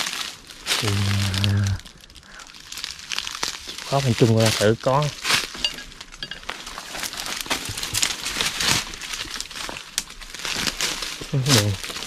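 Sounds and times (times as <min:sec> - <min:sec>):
brushing through twigs and branches: 0:00.0 - 0:12.0
footsteps crunching through dry leaves: 0:00.0 - 0:12.0.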